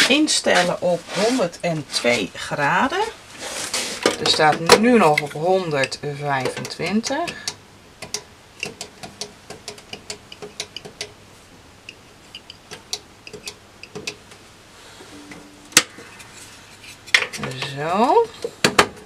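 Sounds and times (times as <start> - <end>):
brief low tone: 15.1 - 16.7.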